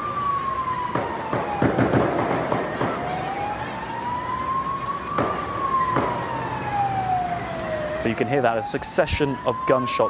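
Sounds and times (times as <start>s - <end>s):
siren wailing: 0.0s - 10.0s.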